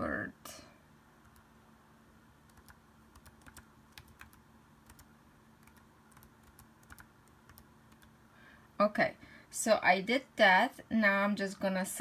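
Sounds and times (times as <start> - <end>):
keyboard typing: 2.5 - 8.1.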